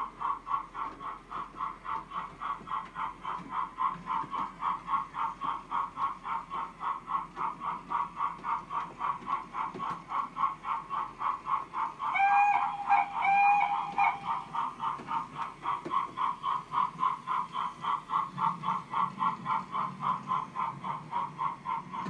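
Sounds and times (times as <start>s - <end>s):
steam locomotive whistle blasts: 12.2s - 14.2s.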